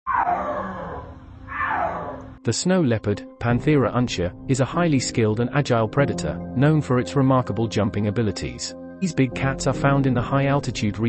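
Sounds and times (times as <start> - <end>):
snow leopard yowling call: 0.1 - 2.4.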